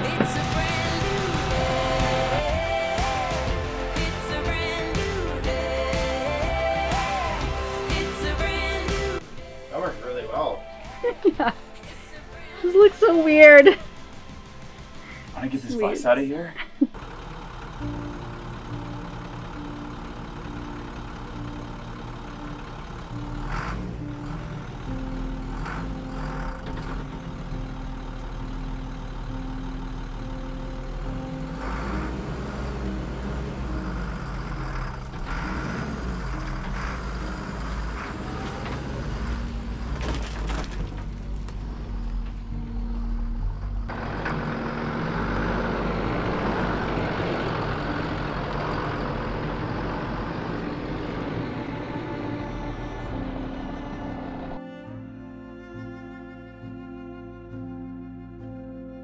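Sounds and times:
bus engine rumbling: 0.0 - 58.9.

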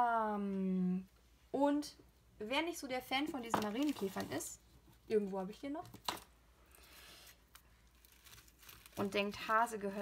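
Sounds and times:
packaging crinkling and rustling: 6.0 - 9.6.

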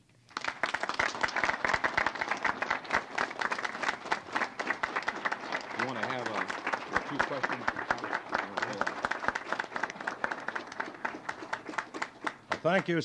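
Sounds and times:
crowd applauding: 0.0 - 13.0
voices: 5.8 - 9.1, 12.6 - 13.0.

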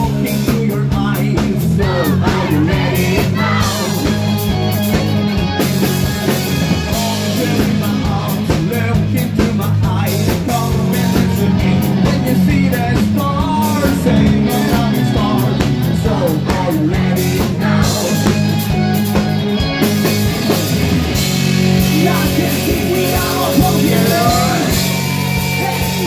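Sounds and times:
man singing into a microphone: 0.0 - 4.2, 6.9 - 18.6, 21.8 - 25.0
bass guitar: 0.0 - 26.0
drums: 0.0 - 26.0
electric guitar: 0.0 - 26.0.

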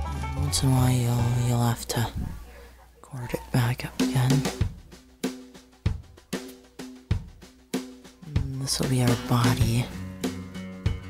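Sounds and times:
background music with drum beat: 0.0 - 1.7, 3.4 - 11.0.

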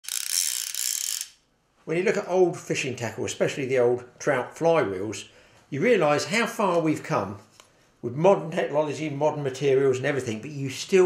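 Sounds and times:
fly reel ratchet buzzing: 0.0 - 1.4.

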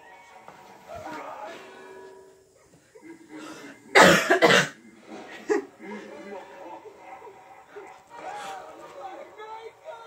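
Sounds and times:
person coughing harshly: 3.9 - 4.8.

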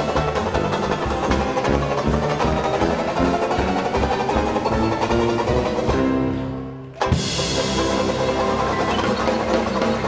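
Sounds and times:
jazz band playing: 0.0 - 10.0.

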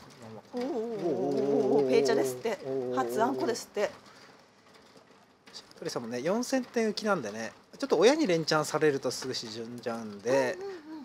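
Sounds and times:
man humming low: 0.6 - 3.5.

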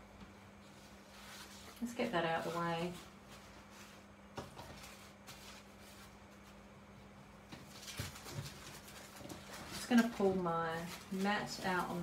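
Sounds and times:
low steady hum: 0.0 - 12.0
paper rustling: 0.7 - 6.6, 7.6 - 12.0.

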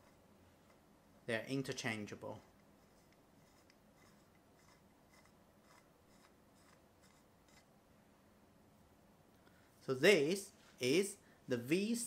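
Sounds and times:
faint scratchy rasps of screwing: 2.4 - 7.7.

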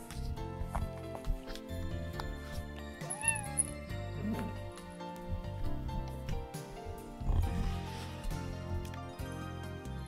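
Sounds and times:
cat meowing: 3.0 - 4.6.

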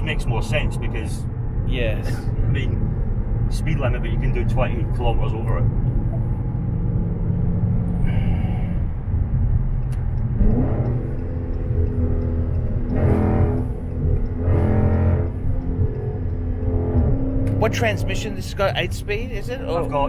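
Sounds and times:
car engine rumble: 0.0 - 20.0
road noise: 0.0 - 20.0.

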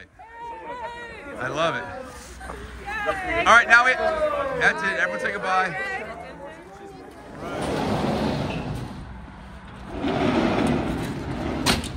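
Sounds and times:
sliding door rumbling along track: 7.4 - 11.9.

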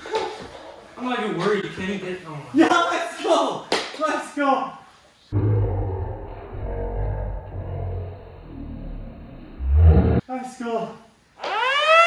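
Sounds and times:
slowed-down low rumble: 5.3 - 10.2.

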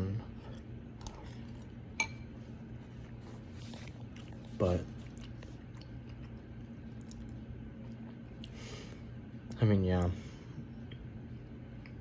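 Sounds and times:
steady low hum: 0.0 - 12.0
soft chewing: 0.1 - 12.0
spoon clinking on ceramic bowl: 2.0 - 2.3.

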